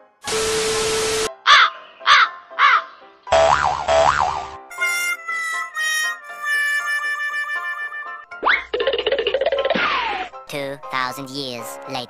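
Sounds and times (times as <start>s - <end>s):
light cartoonish music: 0.0s - 12.0s
tv static burst: 0.3s - 1.3s.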